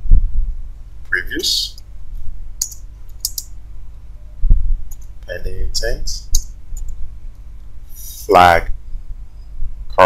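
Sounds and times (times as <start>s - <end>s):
keyboard keystrokes: 2.6s - 3.5s.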